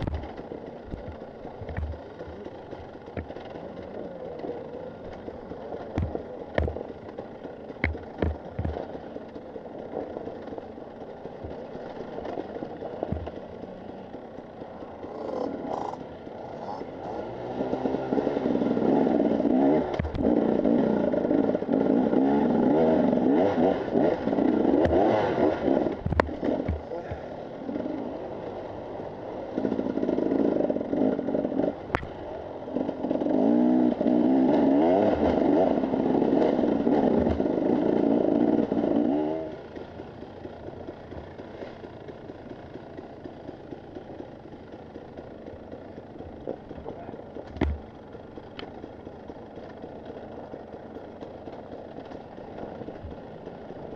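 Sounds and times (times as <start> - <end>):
knocks and clatter from bike: 0.0 - 16.2, 17.0 - 22.4, 23.1 - 53.9
motorcycle engine revving: 0.0 - 53.9.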